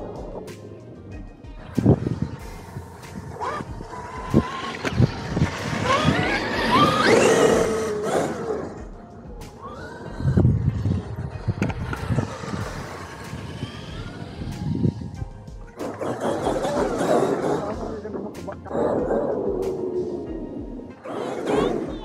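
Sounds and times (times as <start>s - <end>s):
electric motor whining: 1.5s - 18.2s, 18.9s - 22.0s.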